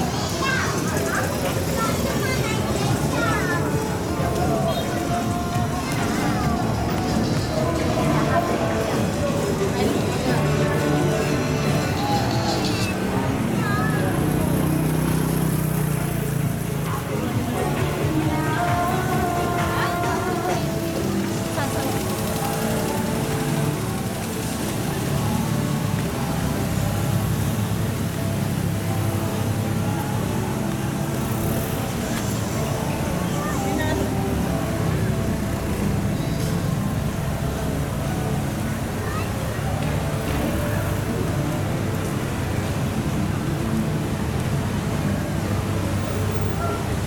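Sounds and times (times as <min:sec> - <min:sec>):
voices: 0:00.0 - 0:47.0
car engines in slow traffic: 0:20.6 - 0:47.0.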